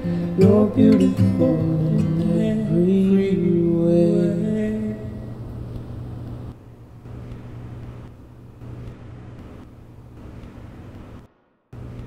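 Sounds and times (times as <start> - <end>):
faint hum: 0.0 - 12.0
low rumble and hiss: 0.0 - 12.0.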